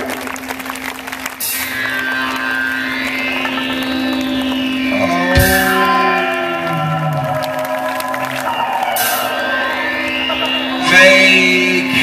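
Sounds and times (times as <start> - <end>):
held low note: 1.9 - 12.0
rising higher tone: 3.3 - 12.0
live band music through speakers: 4.9 - 7.0.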